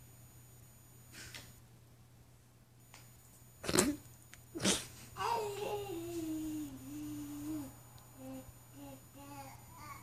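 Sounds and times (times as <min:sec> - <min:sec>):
baby humming: 0:05.2 - 0:10.0.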